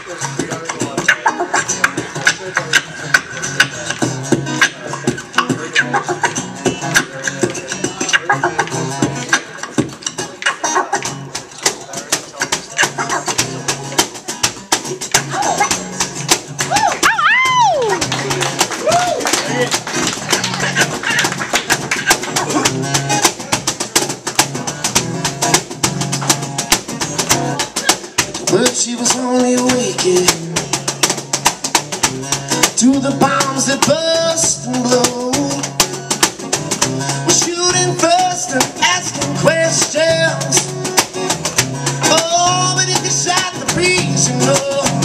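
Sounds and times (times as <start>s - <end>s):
acoustic guitar strumming: 0.0s - 45.0s
beatboxing: 0.0s - 45.0s
cajon percussion: 0.0s - 45.0s
sliding vocal swoop: 12.7s - 13.5s.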